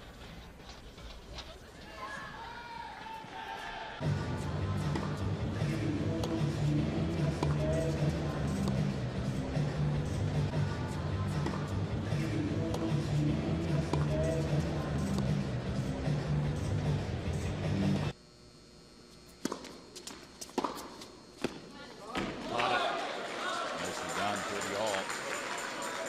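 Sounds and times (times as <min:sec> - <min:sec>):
background music: 0:04.0 - 0:18.1
tennis ball bouncing on court: 0:07.2 - 0:07.9, 0:11.4 - 0:11.7, 0:13.7 - 0:14.4, 0:15.0 - 0:15.4, 0:19.4 - 0:22.3.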